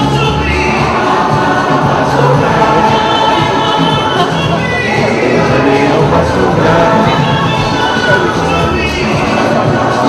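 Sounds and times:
choir singing: 0.0 - 10.0
musical accompaniment: 0.0 - 10.0.

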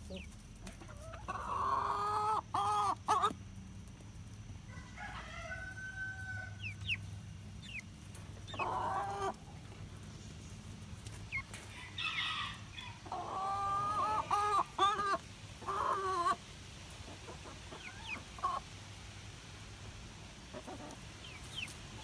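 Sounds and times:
chickens calling and squawking: 0.0 - 22.0.

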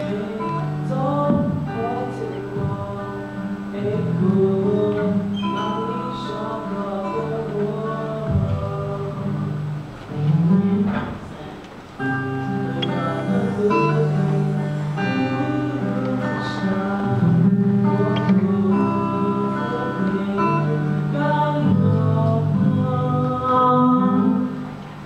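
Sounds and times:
man singing into a microphone: 0.0 - 24.8
acoustic guitar: 0.0 - 25.0.

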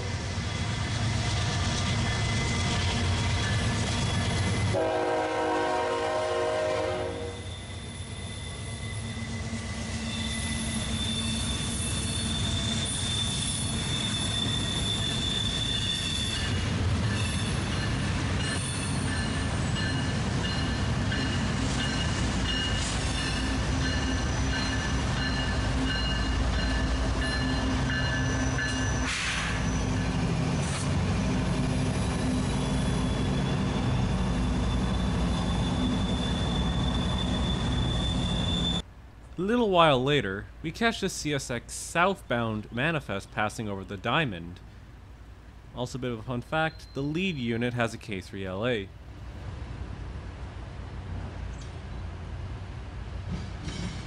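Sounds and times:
freight train rumbling: 0.0 - 54.0
locomotive horn: 4.7 - 7.5
high wheel squeal: 7.2 - 30.9, 31.7 - 38.8.

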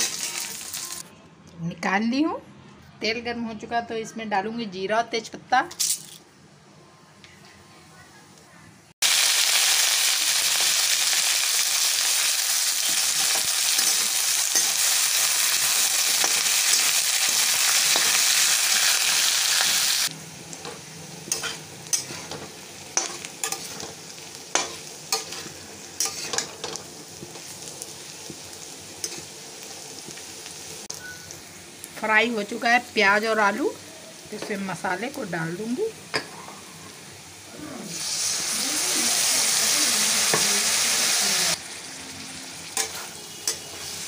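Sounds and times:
vegetables sizzling in hot oil: 0.0 - 1.1, 9.0 - 44.0
metal spatula scraping pan: 21.3 - 26.8.

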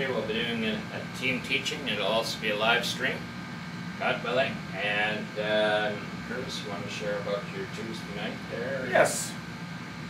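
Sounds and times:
steady room hum: 0.0 - 10.0.

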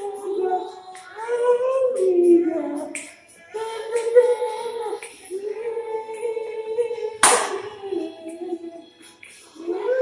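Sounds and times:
high voice singing unaccompanied: 0.0 - 8.9, 9.6 - 10.0.

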